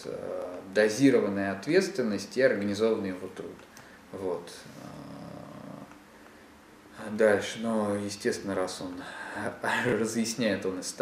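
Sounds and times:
man humming: 4.7s - 6.0s.

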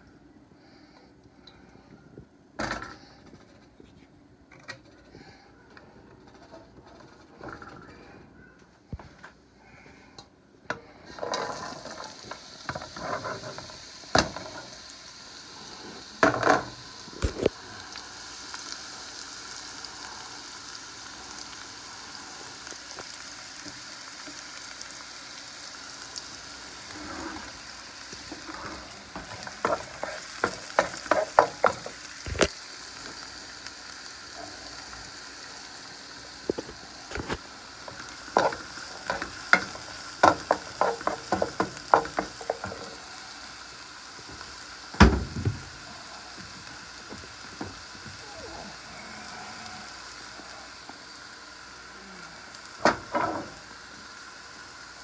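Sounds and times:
onion sizzling in oil: 10.6s - 55.0s
wooden spatula scraping pan: 12.7s - 14.6s, 28.3s - 32.0s
spatula knocking pan: 38.4s - 42.7s.

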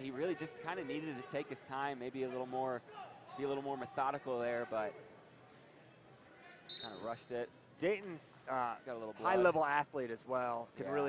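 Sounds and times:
referee whistle blast: 6.7s - 7.1s.

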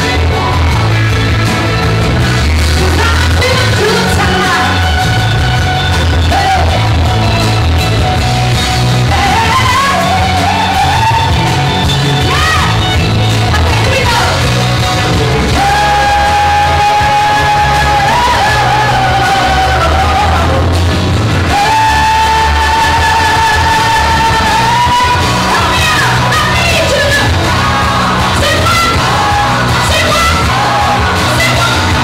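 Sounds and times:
amplified pop music with bass beat: 0.0s - 32.0s
woman singing into a microphone: 2.8s - 5.0s, 9.0s - 11.6s, 21.5s - 32.0s.

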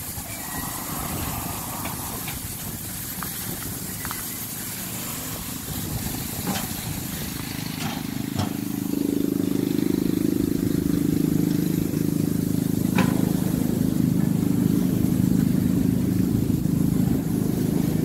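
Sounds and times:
low rumbling: 0.0s - 18.0s.

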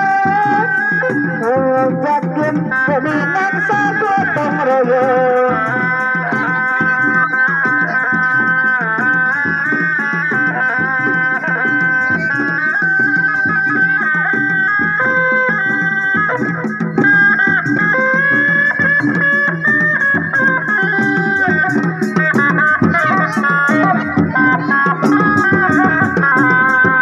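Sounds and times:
reed pipe melody: 0.0s - 27.0s
steady drum beat: 0.0s - 27.0s.

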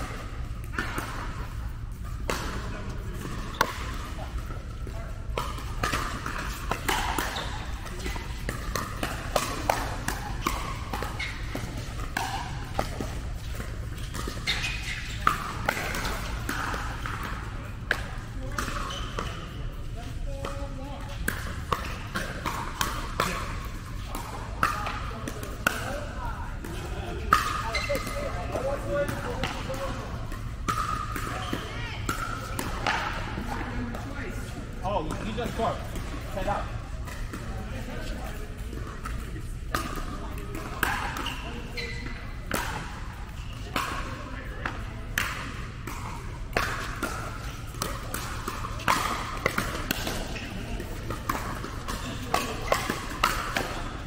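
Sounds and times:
ball bouncing on court: 0.0s - 54.0s.

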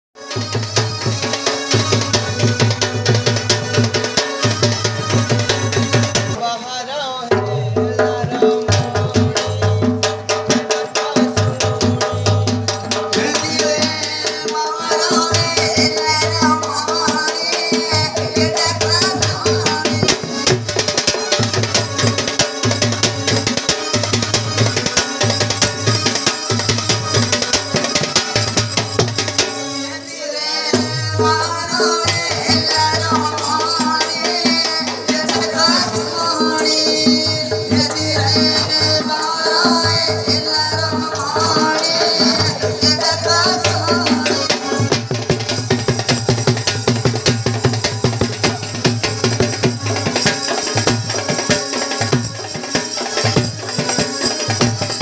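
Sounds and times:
folk drumming: 0.2s - 55.0s.

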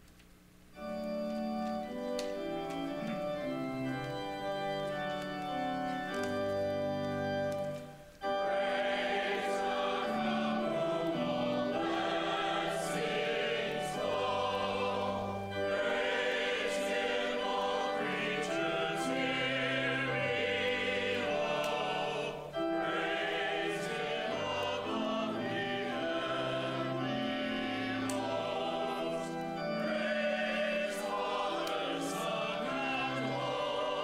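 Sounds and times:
organ: 0.7s - 34.0s
choir singing a hymn: 1.9s - 34.0s
choir breathing: 7.8s - 34.0s.

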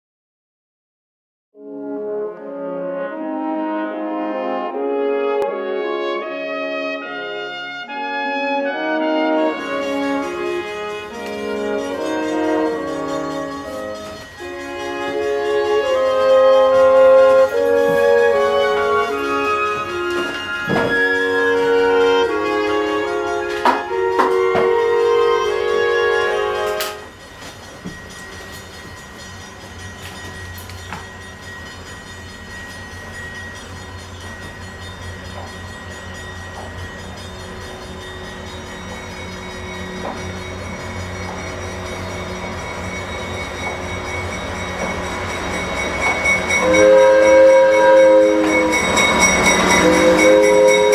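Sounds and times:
brass music: 1.6s - 27.1s, 46.5s - 50.9s
diesel locomotive engine rumbling: 7.2s - 50.9s.

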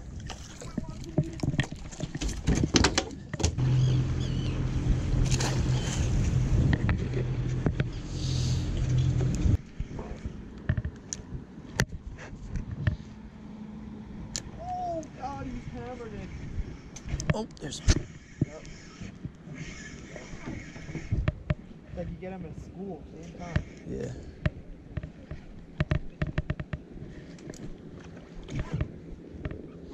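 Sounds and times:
gear clattering on boat deck: 0.3s - 3.6s
low motor hum: 3.3s - 17.3s.

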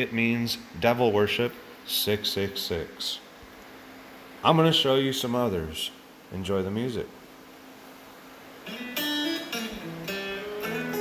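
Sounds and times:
plucked guitar music: 8.6s - 11.0s.

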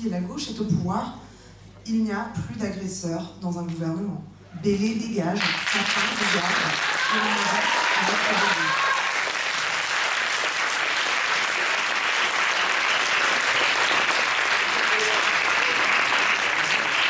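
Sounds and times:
audience applauding: 5.4s - 17.0s.

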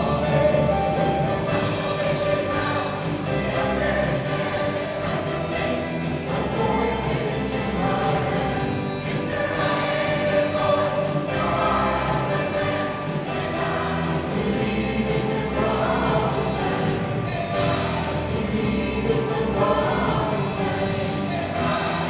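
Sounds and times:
choir singing: 0.0s - 22.0s
rock band playing: 0.0s - 22.0s.

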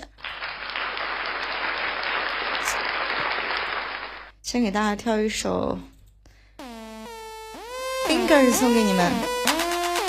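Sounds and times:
electronic dance music: 6.6s - 10.0s
synthesizer note sliding down: 6.6s - 10.0s.

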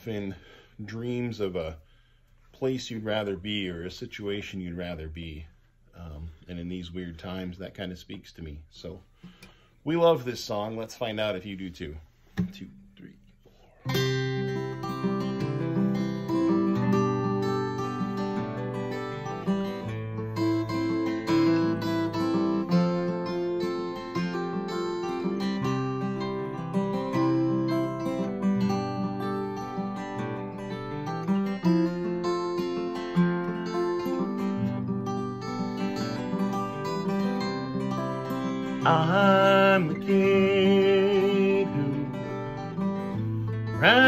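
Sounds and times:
acoustic guitars playing: 12.0s - 44.0s.

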